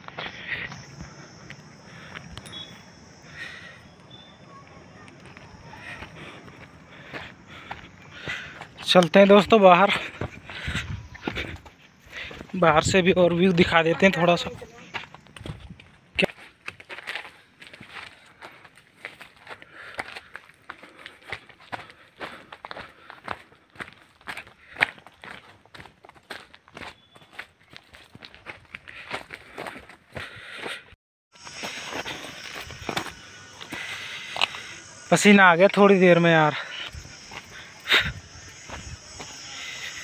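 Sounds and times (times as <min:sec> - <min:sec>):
footsteps crunching on stones: 0:00.0 - 0:03.2, 0:04.0 - 0:12.8, 0:13.5 - 0:30.8, 0:31.4 - 0:35.1, 0:36.4 - 0:40.0
steady high hiss: 0:31.4 - 0:40.0.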